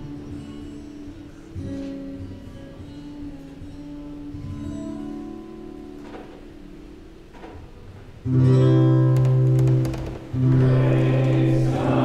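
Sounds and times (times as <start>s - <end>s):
held chords: 8.3s - 12.0s
voices singing a hymn: 10.4s - 12.0s.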